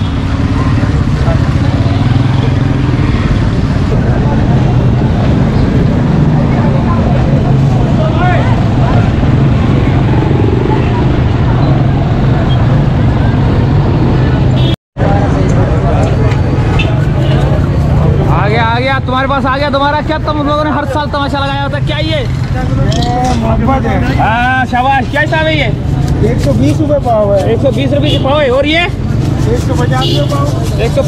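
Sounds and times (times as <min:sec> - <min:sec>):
crowd chatter: 0:00.0 - 0:31.0
motorcycle engines running: 0:00.0 - 0:31.0.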